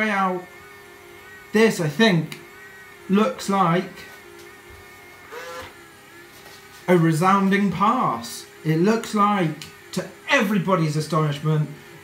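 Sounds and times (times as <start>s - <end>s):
robot vacuum cleaner running: 0.0s - 12.0s.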